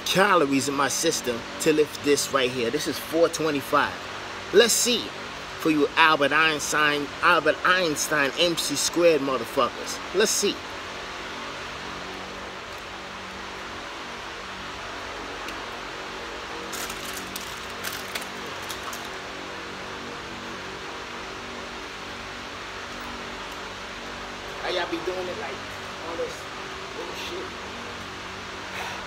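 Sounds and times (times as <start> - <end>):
steady fan-like noise: 0.0 - 29.0.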